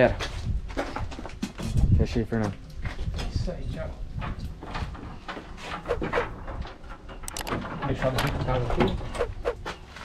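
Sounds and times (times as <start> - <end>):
door scraping and squeaking: 4.6 - 10.0.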